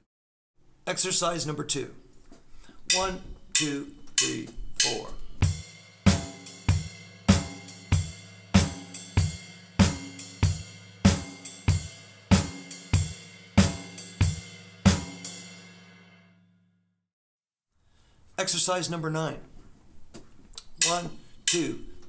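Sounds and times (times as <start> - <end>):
drum kit playing swing: 2.9 - 15.6
cymbal ringing: 2.9 - 16.5, 20.8 - 22.0.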